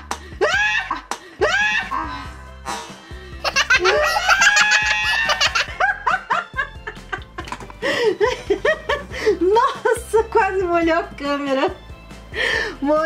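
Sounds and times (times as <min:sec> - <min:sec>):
background music: 0:00.0 - 0:13.0
people laughing and shrieking: 0:00.4 - 0:02.4, 0:03.4 - 0:06.4.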